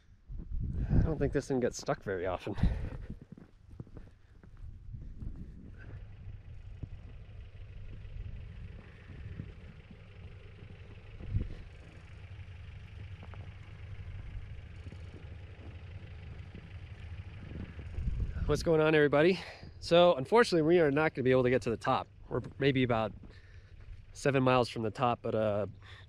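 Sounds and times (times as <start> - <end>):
engine low rumble: 0.0 - 26.0.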